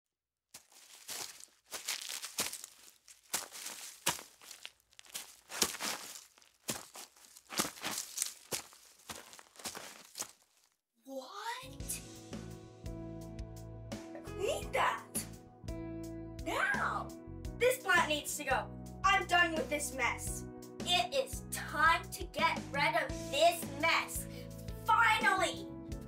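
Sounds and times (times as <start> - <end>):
dry leaves crunching: 0.6 - 10.8
music: 11.5 - 26.0.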